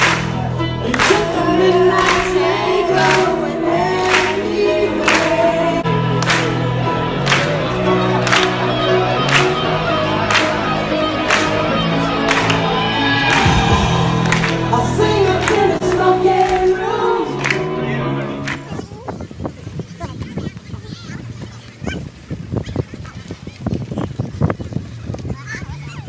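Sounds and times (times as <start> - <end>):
amplified music with steady beat: 0.0 - 18.7
woman singing into microphone: 0.9 - 6.0, 13.4 - 17.8.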